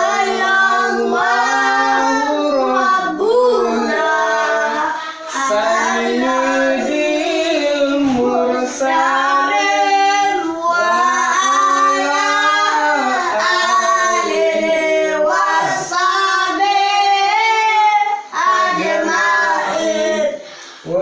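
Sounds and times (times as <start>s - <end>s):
children and man singing unaccompanied: 0.0s - 21.0s.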